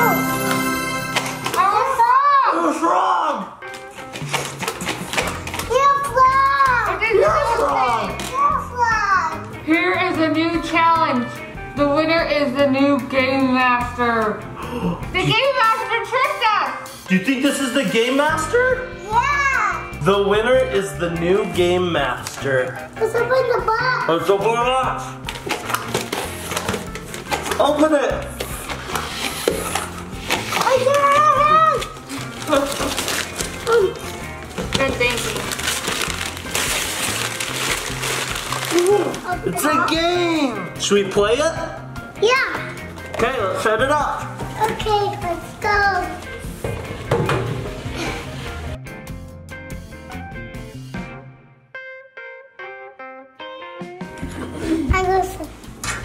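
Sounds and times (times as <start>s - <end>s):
background music: 0.0s - 56.0s
wrapping paper crackling: 3.7s - 6.1s, 25.2s - 40.2s.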